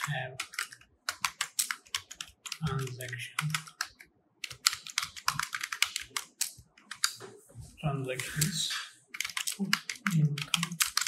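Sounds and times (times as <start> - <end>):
typing on computer keyboard: 0.0 - 7.2, 8.2 - 11.0.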